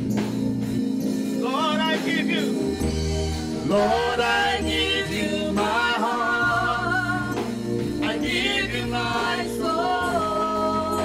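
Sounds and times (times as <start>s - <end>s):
keyboard accompaniment: 0.0s - 11.0s
woman singing gospel song: 3.7s - 11.0s.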